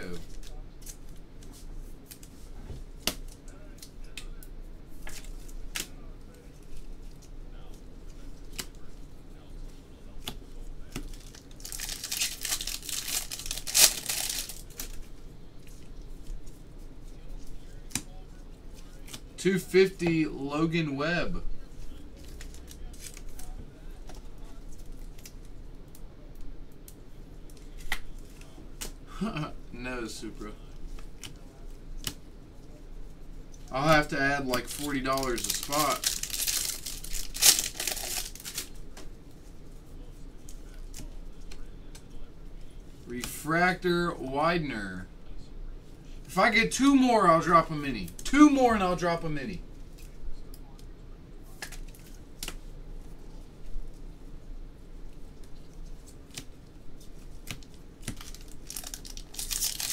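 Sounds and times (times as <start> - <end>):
cards and wrappers rustling: 0.0 - 20.0, 21.7 - 25.6, 33.4 - 43.4, 55.2 - 59.9
trading cards snapping and rustling: 10.2 - 15.1, 33.8 - 39.1, 51.5 - 52.6, 57.4 - 59.9
foil wrapper rustling: 10.8 - 15.1, 33.7 - 38.9, 57.4 - 59.9.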